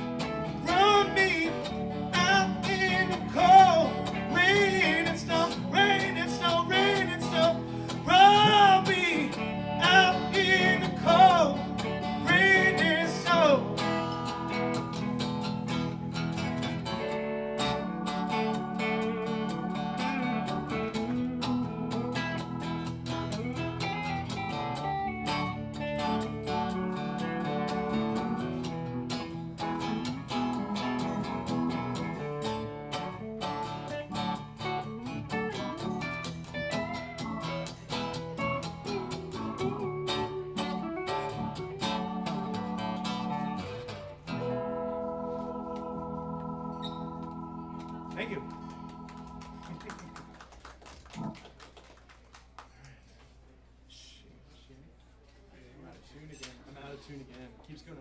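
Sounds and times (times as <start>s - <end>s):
strummed acoustic guitar: 0.0s - 50.0s
keyboard: 0.0s - 51.7s
electric guitar: 0.0s - 52.0s
person singing: 0.6s - 15.2s.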